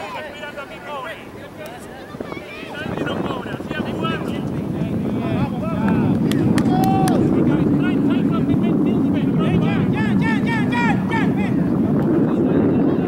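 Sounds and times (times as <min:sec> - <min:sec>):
faint voices: 0:00.0 - 0:13.0
wind rumbling on microphone: 0:00.0 - 0:13.0.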